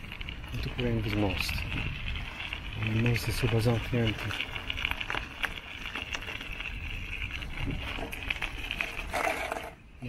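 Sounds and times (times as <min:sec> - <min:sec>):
bicycle tyres crunching on gravel: 0:00.0 - 0:10.0.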